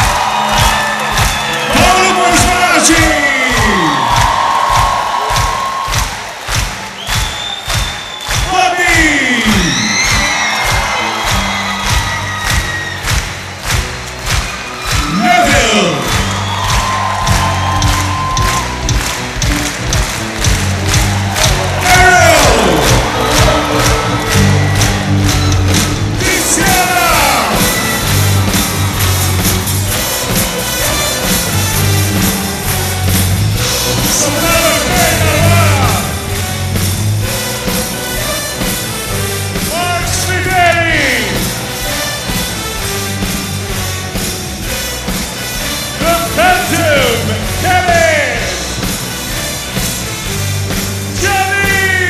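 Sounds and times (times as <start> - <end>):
audience clapping in rhythm: 0.0 - 52.0
crowd cheering: 0.0 - 52.0
live band playing: 0.0 - 52.0.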